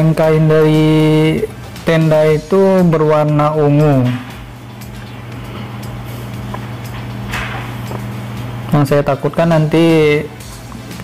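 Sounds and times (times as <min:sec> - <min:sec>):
ambient noise: 0:00.0 - 0:11.0
low held music tones: 0:00.0 - 0:11.0.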